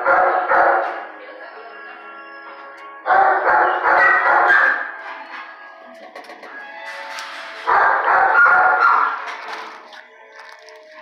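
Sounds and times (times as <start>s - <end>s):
dogs barking: 0.0s - 1.1s, 3.0s - 5.6s, 7.6s - 9.6s.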